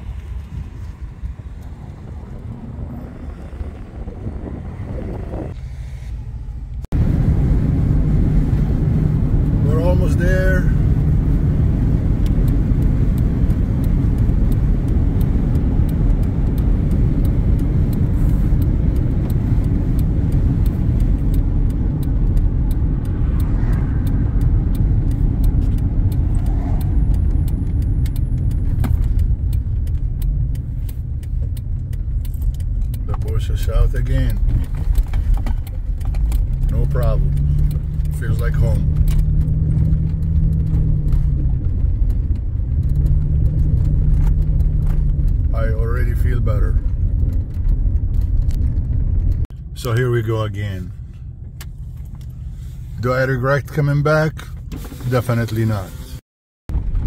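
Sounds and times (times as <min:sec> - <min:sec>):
wind noise on microphone: 0:00.0 - 0:09.6, 0:38.8 - 0:49.5, 0:56.7 - 0:57.0
car road and engine rumble: 0:00.0 - 0:57.0.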